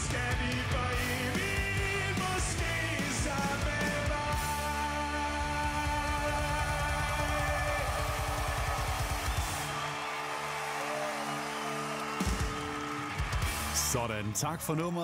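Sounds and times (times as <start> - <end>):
drum and cymbal hits: 12.0 - 14.1.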